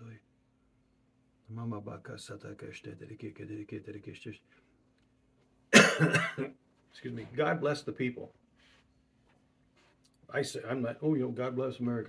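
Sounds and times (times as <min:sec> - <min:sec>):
man coughing: 0:05.7 - 0:06.6.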